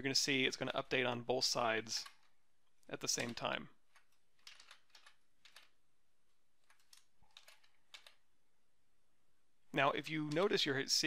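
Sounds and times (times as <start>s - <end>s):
computer keyboard keystrokes: 3.1s - 5.8s, 6.6s - 8.2s.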